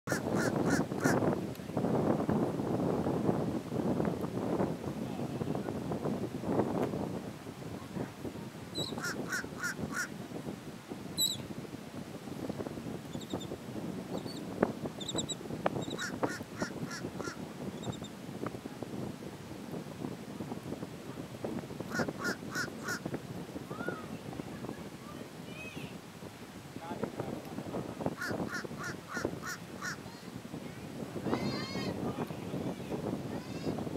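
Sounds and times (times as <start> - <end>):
wind noise on microphone: 0.0 - 33.9
crow cawing: 21.9 - 23.0, 28.2 - 30.0.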